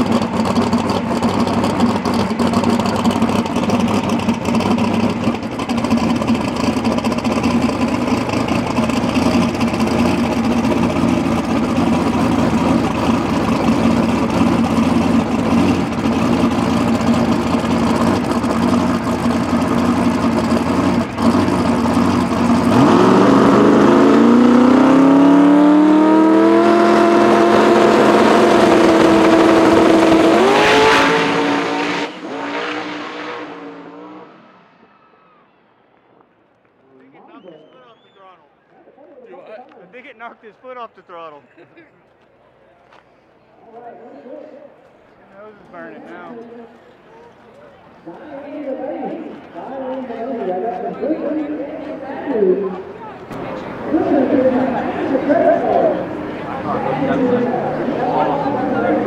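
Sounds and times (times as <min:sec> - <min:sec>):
car engine idling and revving: 0:00.0 - 0:35.5, 0:44.9 - 0:59.0.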